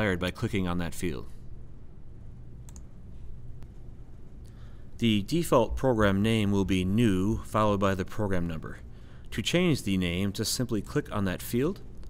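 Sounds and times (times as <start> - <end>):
faint low room hum: 0.0 - 12.0
computer mouse clicks: 2.6 - 2.9.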